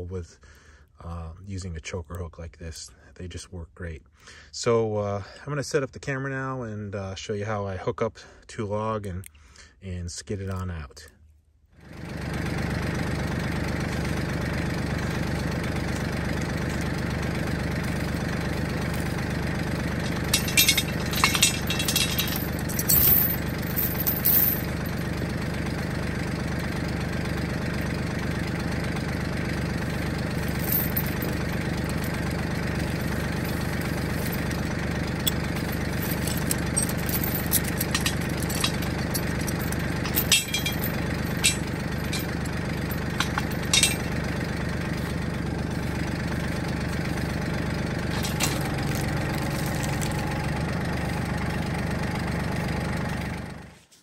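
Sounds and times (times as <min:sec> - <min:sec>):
tractor engine idling: 0:11.8 - 0:53.9
log chain clinking: 0:15.0 - 0:25.2, 0:29.8 - 0:51.2.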